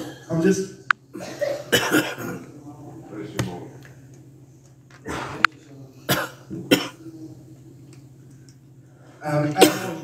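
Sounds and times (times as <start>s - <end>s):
person coughing: 1.1s - 2.4s, 6.1s - 7.0s, 9.6s - 10.0s.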